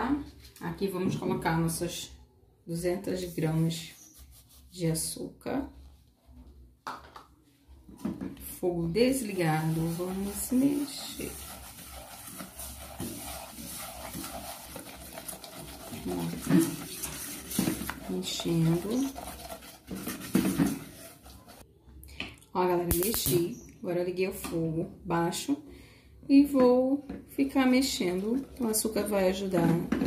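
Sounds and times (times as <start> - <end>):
spatula scraping a saucepan: 8.8 - 21.6, 27.6 - 30.0.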